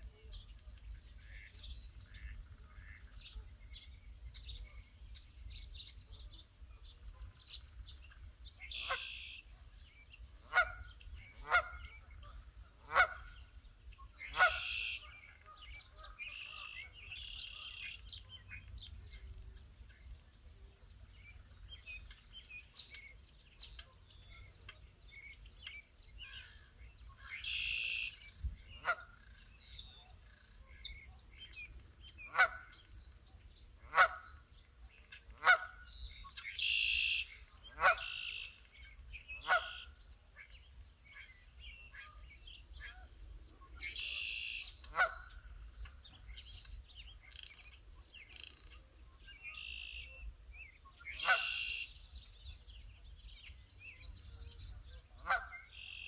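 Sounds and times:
small birds chirping: 0.0s - 56.0s
geese honking: 12.8s - 13.3s, 14.3s - 15.1s.

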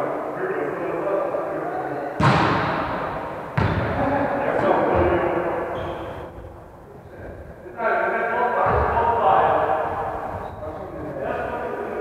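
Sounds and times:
voices talking: 0.0s - 12.0s
volleyball struck hard: 2.2s - 4.1s.

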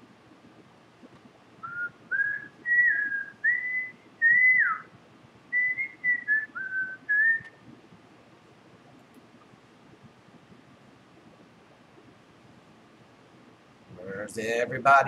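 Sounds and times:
person whistling a tune: 1.6s - 4.9s, 5.6s - 7.6s.

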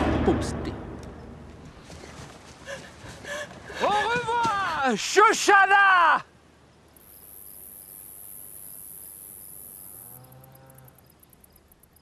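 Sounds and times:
crickets chirping: 6.7s - 12.0s.

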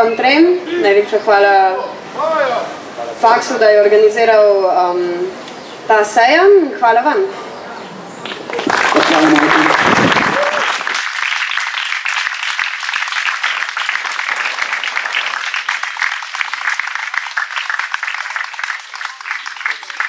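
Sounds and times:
audience applause: 8.2s - 20.0s.

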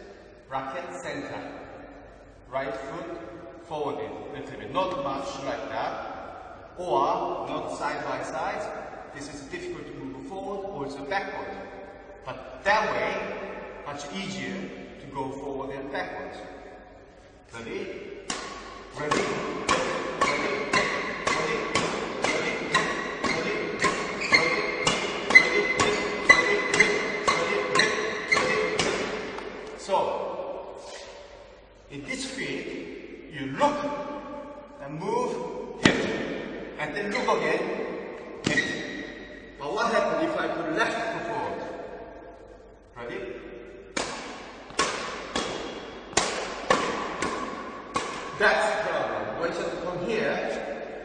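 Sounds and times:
badminton racket hitting shuttlecock: 18.2s - 29.8s, 35.8s - 37.3s, 38.2s - 39.4s, 43.9s - 48.8s.

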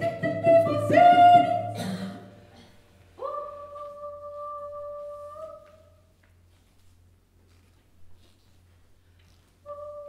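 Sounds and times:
woman singing a long note: 3.2s - 5.8s.

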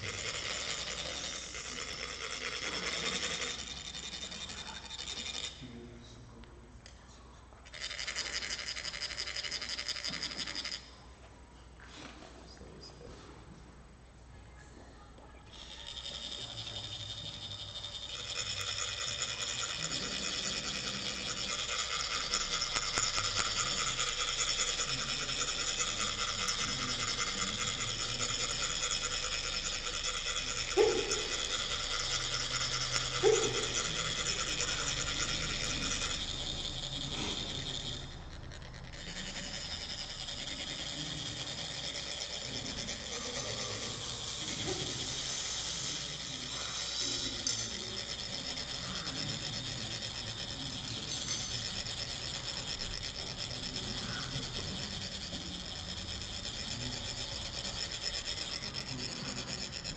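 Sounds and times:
metallic rasp of sand funnels: 15.7s - 59.9s.

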